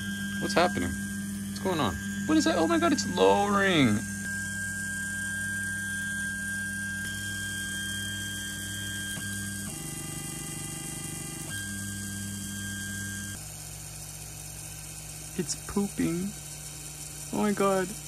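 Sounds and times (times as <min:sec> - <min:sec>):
fan hum: 0:00.0 - 0:07.1, 0:09.7 - 0:18.0
stepper motors whining: 0:00.0 - 0:18.0.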